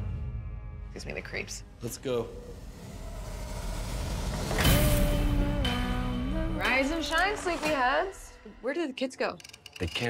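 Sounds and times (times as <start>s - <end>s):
low rumbling drone: 0.0s - 6.6s.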